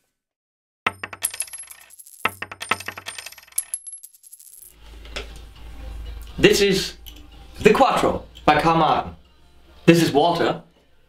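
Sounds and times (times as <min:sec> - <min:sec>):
coins clattering on hard surface: 0:00.9 - 0:04.8.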